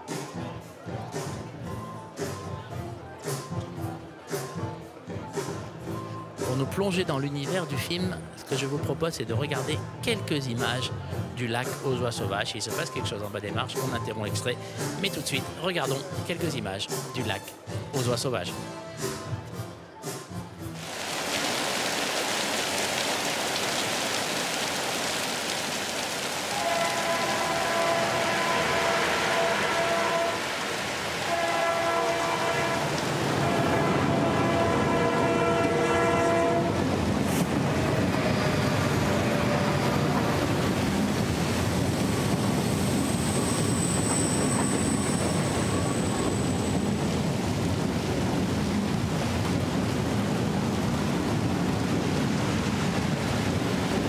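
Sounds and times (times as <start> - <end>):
train horn blasts: 26.5 - 37.0
train running past: 26.5 - 54.0
steady rushing noise: 36.5 - 54.0.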